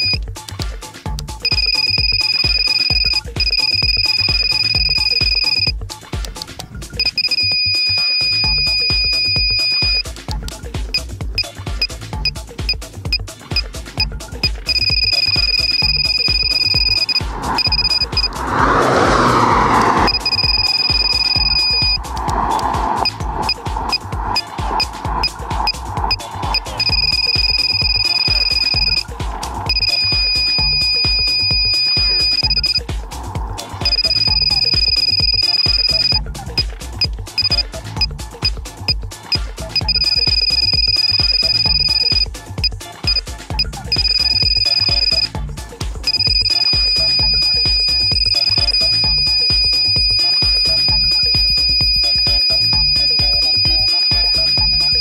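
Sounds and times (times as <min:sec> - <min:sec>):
quick beeps: 0:00.0 - 0:00.2, 0:01.4 - 0:32.9, 0:33.6 - 0:45.4, 0:46.0 - 0:55.0
speed gun aiming tone: 0:14.5 - 0:32.9, 0:46.1 - 0:55.0.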